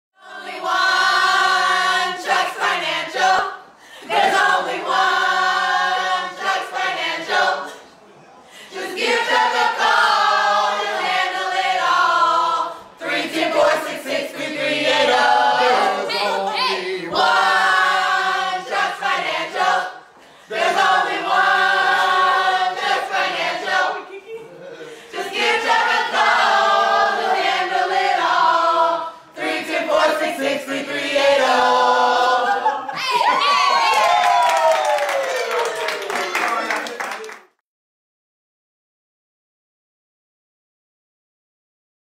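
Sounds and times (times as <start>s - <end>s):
group singing without instruments: 0.2s - 33.0s.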